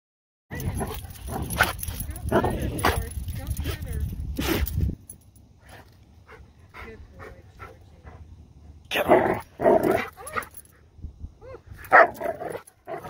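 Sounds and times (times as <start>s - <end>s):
dogs growling and yipping: 0.5s - 3.1s, 9.0s - 10.8s, 11.7s - 13.0s
dogs scuffling: 0.6s - 5.0s.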